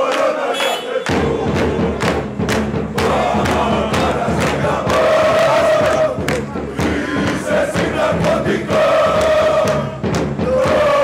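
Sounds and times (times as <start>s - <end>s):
crowd chanting in unison: 0.0s - 11.0s.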